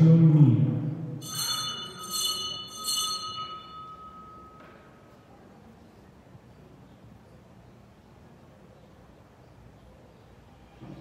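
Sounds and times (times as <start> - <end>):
altar bells ringing: 1.2 - 5.1.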